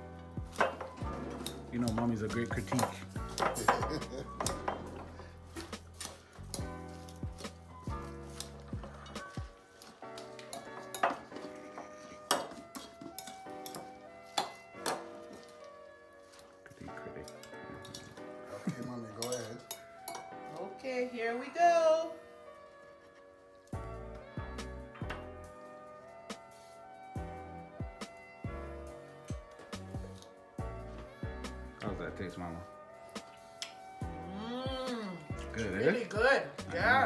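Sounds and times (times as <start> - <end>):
metal utensils clinking on glass bowl: 0.5 - 5.7, 8.4 - 15.1, 17.2 - 20.7
background music with heavy bass: 23.8 - 31.8.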